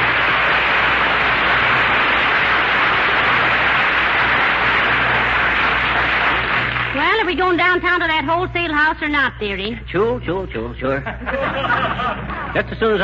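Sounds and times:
studio audience applauding: 0.0s - 7.6s
low hum: 0.0s - 12.6s.

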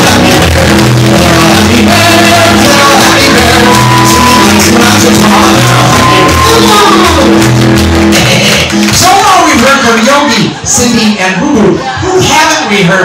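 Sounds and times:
voices shouting and singing: 0.0s - 7.5s
repeating bass line: 0.0s - 9.2s
live band with piano and drums: 0.0s - 9.7s.

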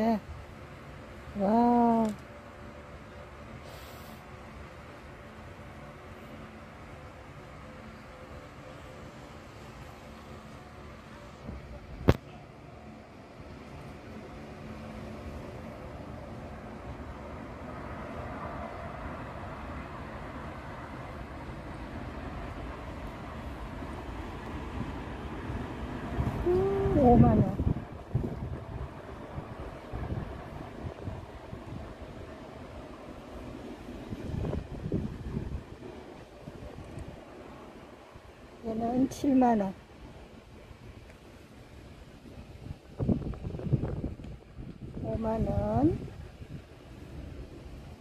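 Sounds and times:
steady low rumbling: 9.3s - 48.0s
wind buffeting microphone: 21.3s - 38.4s, 40.0s - 48.0s.

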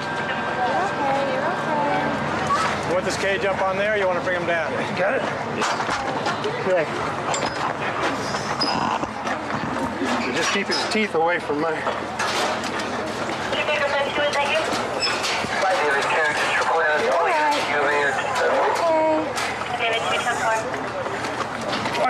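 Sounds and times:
people talking over one another: 12.9s - 22.0s.

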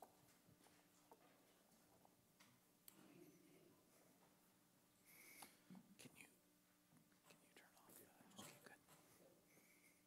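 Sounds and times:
faint whispering: 5.0s - 6.4s, 7.2s - 10.0s.

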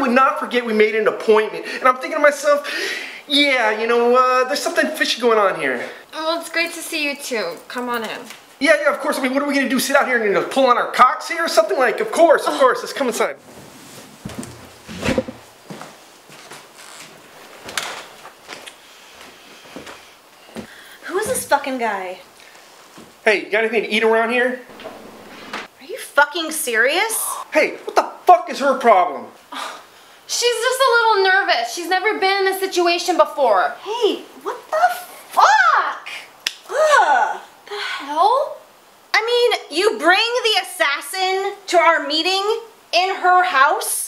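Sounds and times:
footsteps: 13.4s - 21.6s, 22.5s - 23.2s, 24.7s - 25.8s
rustling: 13.4s - 21.6s
woman's wordless vocal exclamation: 33.9s - 38.6s
finger snap: 36.4s - 36.7s.

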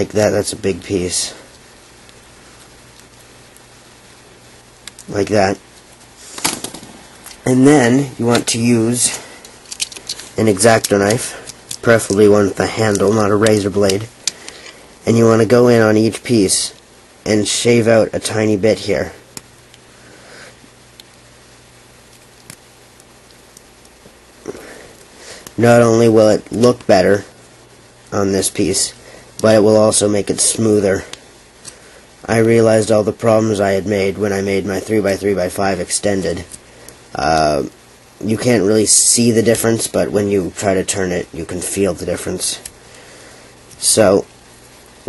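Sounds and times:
low hiss: 0.0s - 45.0s
low steady hum: 0.0s - 45.0s
rustling: 1.3s - 15.2s
knife shaving plastic: 8.4s - 15.4s
plastic pieces clicking: 9.4s - 14.6s.

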